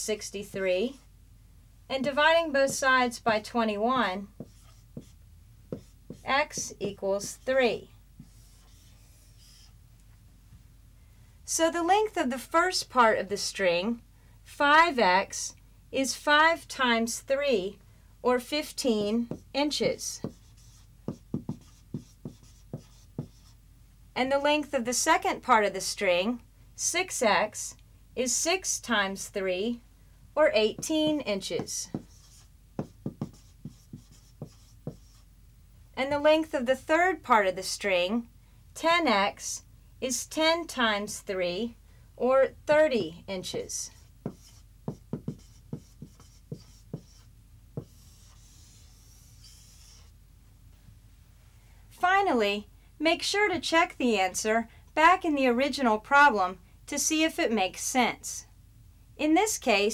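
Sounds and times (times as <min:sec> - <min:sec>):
marker writing on whiteboard: 0:02.6 - 0:03.0, 0:04.2 - 0:09.8, 0:18.7 - 0:23.6, 0:30.6 - 0:35.3, 0:43.4 - 0:50.2.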